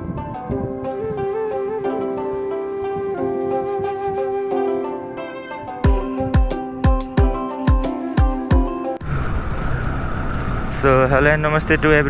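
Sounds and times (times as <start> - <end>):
road and wind noise: 0.0 - 6.4, 9.0 - 12.0.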